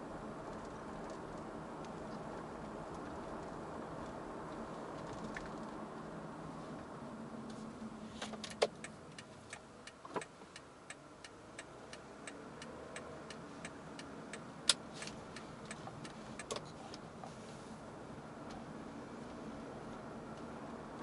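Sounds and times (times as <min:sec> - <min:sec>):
road and engine noise: 0:00.0 - 0:21.0
car turn signal clicking: 0:08.3 - 0:17.0.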